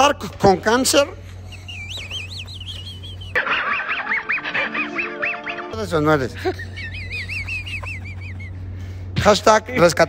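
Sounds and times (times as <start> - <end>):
cartoon music: 3.4 - 5.9
squeaky honk-like calls: 3.6 - 5.9.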